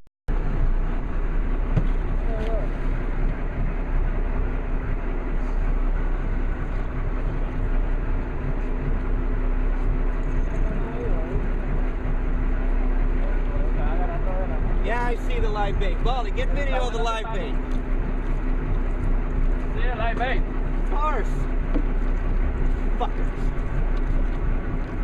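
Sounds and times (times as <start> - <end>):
boat engine humming: 0.3 - 25.0
sea noise: 0.3 - 25.0
wind: 0.3 - 25.0.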